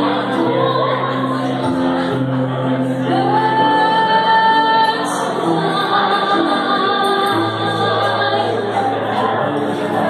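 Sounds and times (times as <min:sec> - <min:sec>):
woman singing into a microphone: 0:00.0 - 0:09.5.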